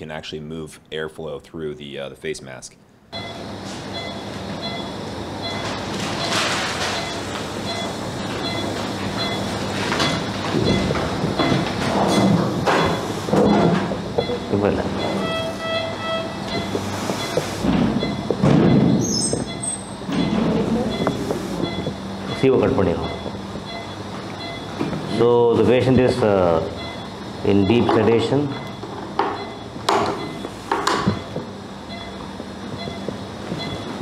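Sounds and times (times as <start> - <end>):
equipment hum: 0.0 - 34.0
patient monitor beeping: 3.1 - 34.0.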